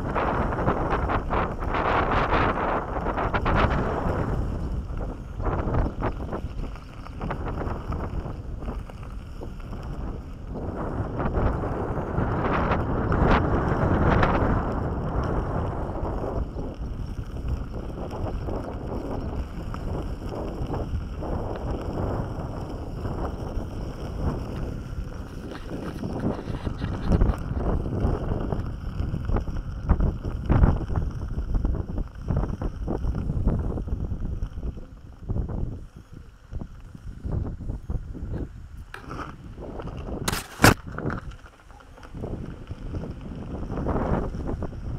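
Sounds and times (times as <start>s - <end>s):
tyre rolling over gravel: 0.0s - 44.9s
wind rumbling on microphone: 0.0s - 44.9s.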